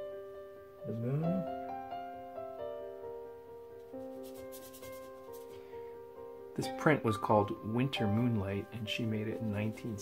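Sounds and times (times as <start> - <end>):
soft keyboard music: 0.0 - 10.0
wet brush stroking paper: 3.8 - 5.7.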